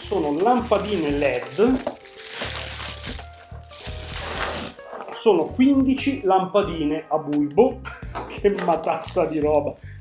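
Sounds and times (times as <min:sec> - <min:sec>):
plastic bag crinkling: 0:00.0 - 0:05.3
quiet background music: 0:00.0 - 0:10.0.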